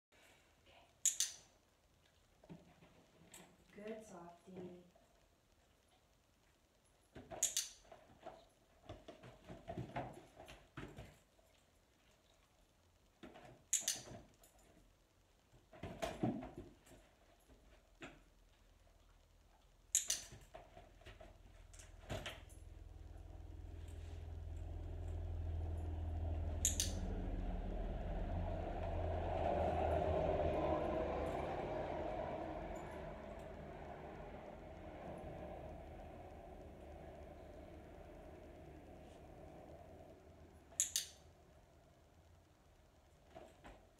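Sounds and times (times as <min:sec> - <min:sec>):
dog-training clicker clicks: 0:01.0 - 0:01.4, 0:07.4 - 0:07.8, 0:13.7 - 0:14.0, 0:19.9 - 0:20.3, 0:26.6 - 0:27.0, 0:40.8 - 0:41.2
low rumble: 0:21.5 - 0:42.5.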